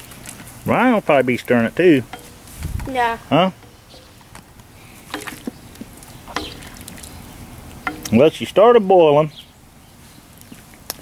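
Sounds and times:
paddle stirring thick chili: 0.0 - 8.6
paddle knocking and scraping pot: 1.4 - 8.7.

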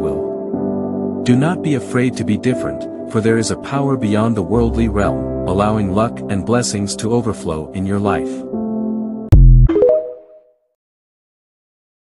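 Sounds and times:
end-card jingle: 9.3 - 10.4.

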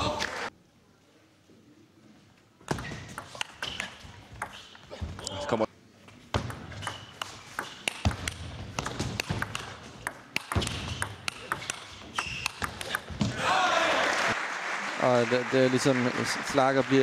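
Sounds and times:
crowd cheering and applauding: 13.4 - 17.0.

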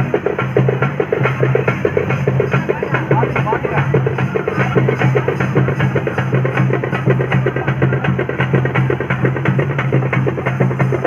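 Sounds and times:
fast loud drumming: 0.0 - 11.0.

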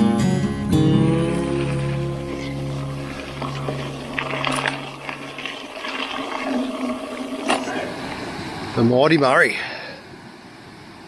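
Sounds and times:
soft guitar music: 0.0 - 5.2
river water rushing through weir: 1.1 - 11.0.

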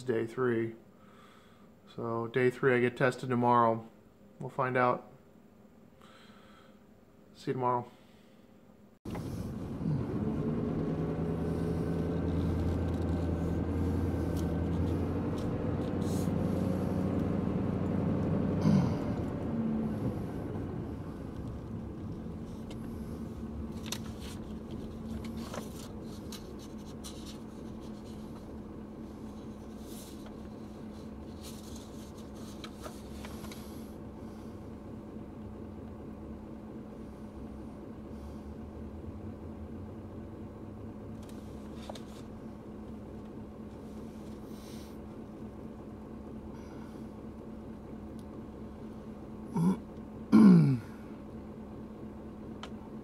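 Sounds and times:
car engine idling: 9.1 - 53.0
man clearing his throat: 18.6 - 19.2, 49.5 - 51.1
faint scratchy rustles: 21.6 - 33.7.

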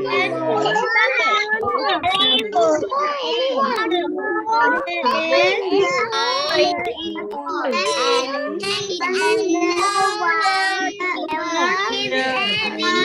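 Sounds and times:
children reading aloud in chorus: 0.0 - 13.0.

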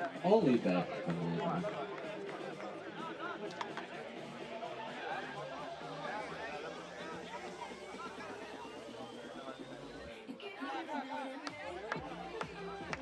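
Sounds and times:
chatter of spectators and players: 0.0 - 13.0.

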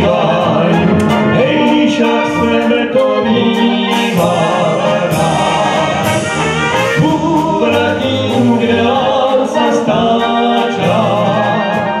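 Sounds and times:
brass band playing: 0.0 - 12.0
two men singing: 0.0 - 12.0.

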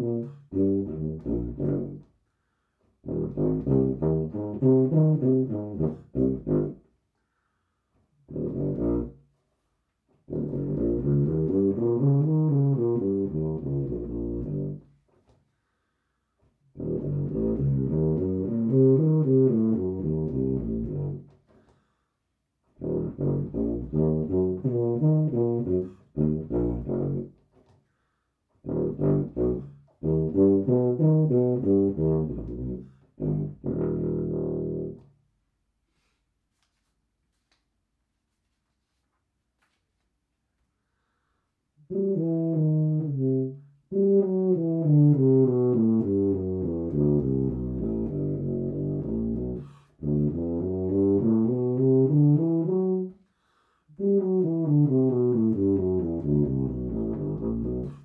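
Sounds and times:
tuba playing scales: 0.0 - 7.0, 8.2 - 15.2, 16.7 - 21.9, 22.7 - 35.2, 41.7 - 58.0.

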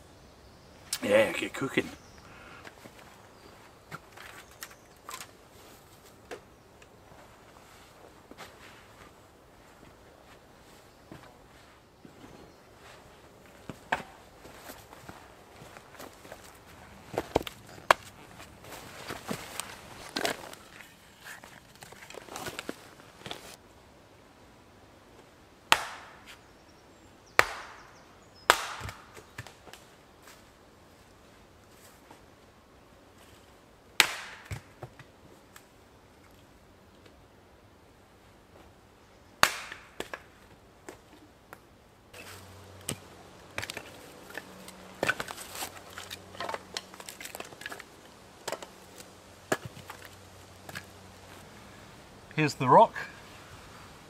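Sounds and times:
log cracking as it splits: 16.0 - 23.6, 28.5 - 29.9, 34.0 - 35.7, 39.4 - 40.3, 42.2 - 51.2
axe chopping firewood: 25.7 - 26.2, 27.4 - 27.8, 28.5 - 29.6, 34.0 - 34.8, 39.4 - 40.3, 42.2 - 50.9
wood pieces clattering: 42.2 - 50.9.

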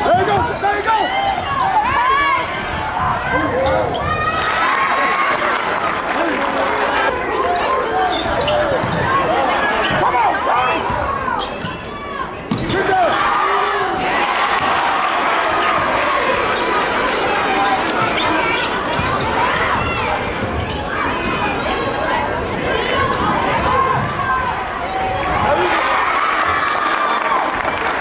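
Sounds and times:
crowd chatter and calls: 0.0 - 28.0
sneakers squeaking: 7.5 - 14.1, 15.6 - 24.6.

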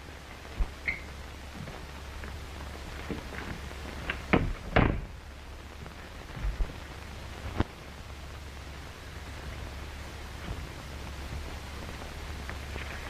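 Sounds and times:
film soundtrack hiss and hum: 0.0 - 13.0.

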